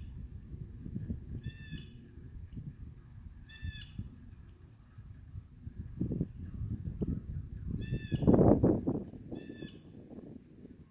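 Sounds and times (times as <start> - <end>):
bird harsh calls: 9.4 - 9.8.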